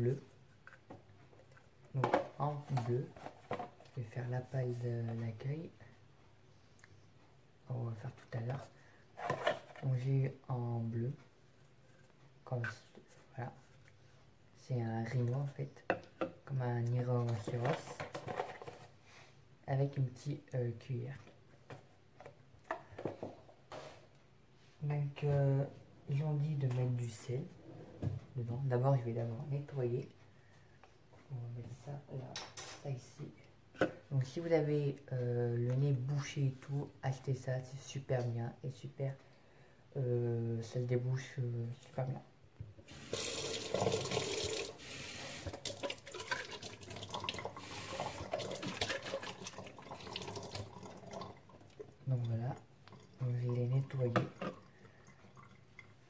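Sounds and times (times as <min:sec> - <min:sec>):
water splashing from tap: 0:42.9 - 0:51.9.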